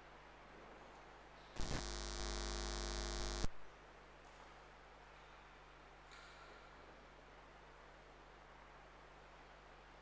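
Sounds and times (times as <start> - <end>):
faint steady hum: 0.0 - 10.0
loud electrical buzz: 1.6 - 3.6.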